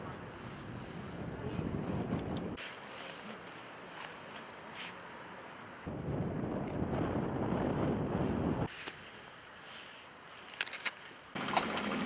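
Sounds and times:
wind rumbling on microphone: 0.0 - 2.6, 5.8 - 8.7.

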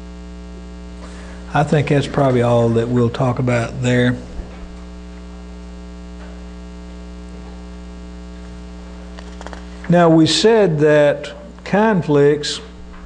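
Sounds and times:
electrical mains hum: 0.0 - 13.0
man's voice: 1.5 - 4.5, 9.9 - 12.8.

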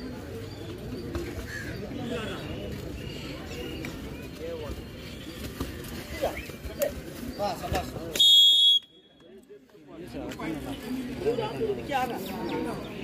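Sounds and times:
crowd chattering and shouting: 0.0 - 13.0
referee whistle blast: 8.2 - 9.1.

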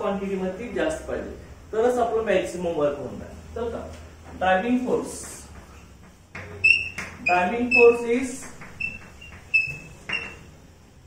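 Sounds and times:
chalk squeak: 6.5 - 10.5.

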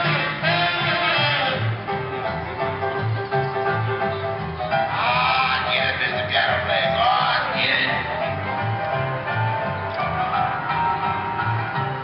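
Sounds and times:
music with held accompaniment: 0.0 - 12.0.

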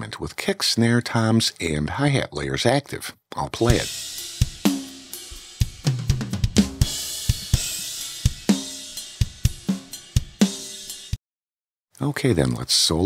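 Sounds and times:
snare drum: 3.7 - 10.6
hi-hat and cymbals: 3.7 - 11.2.

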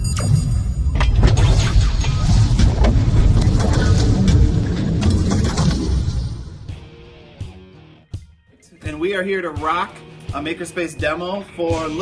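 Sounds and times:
cinematic intro music: 0.0 - 8.3.

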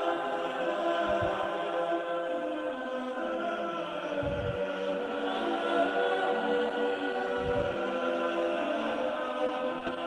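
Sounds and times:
choir singing held notes: 0.0 - 10.0.

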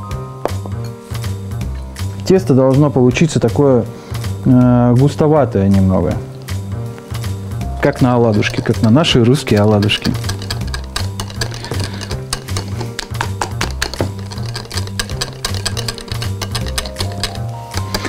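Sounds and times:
background music: 0.0 - 18.0
whisk clicking against glass bowl: 7.8 - 18.0.

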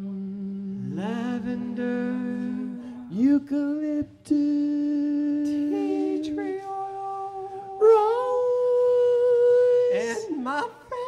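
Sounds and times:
men singing in harmony: 0.0 - 11.0.

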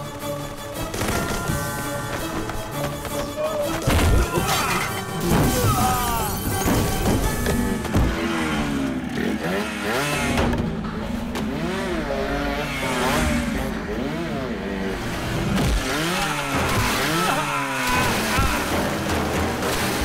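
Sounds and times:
action film background music: 0.0 - 20.0
vehicle engine revving: 7.0 - 20.0.

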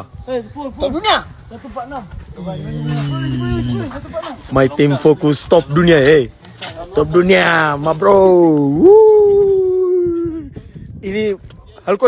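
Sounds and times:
man cheering woooo: 8.6 - 10.5.

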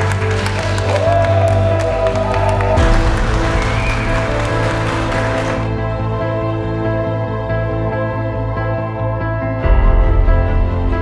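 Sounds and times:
crowd applauding: 0.0 - 5.9
background music: 0.0 - 11.0.

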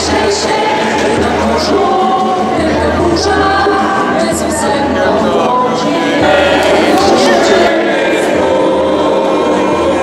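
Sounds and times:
children singing a religious song: 0.0 - 10.0.

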